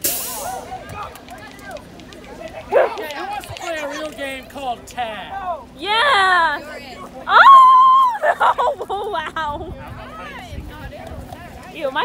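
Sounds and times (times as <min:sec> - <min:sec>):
people chattering outdoors: 0:00.0 - 0:12.0
loud yelp: 0:07.3 - 0:08.4.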